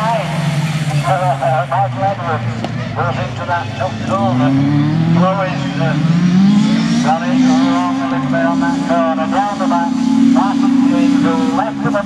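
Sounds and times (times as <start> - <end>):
man talking: 0.0 - 6.2, 7.0 - 12.0
race car engine revving high: 0.0 - 12.0.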